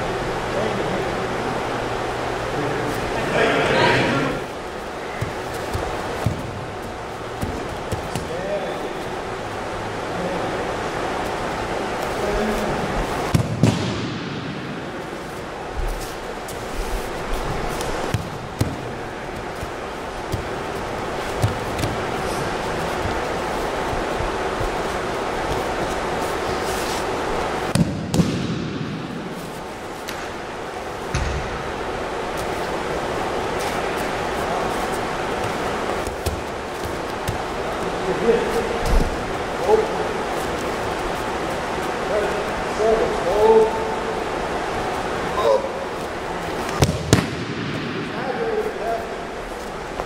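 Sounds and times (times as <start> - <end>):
steady room hum: 0.0 - 50.0.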